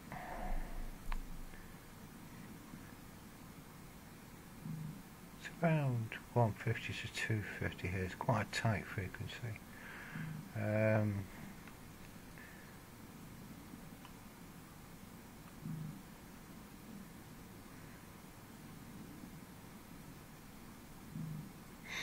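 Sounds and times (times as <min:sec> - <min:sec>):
low hiss: 0:00.0 - 0:22.0.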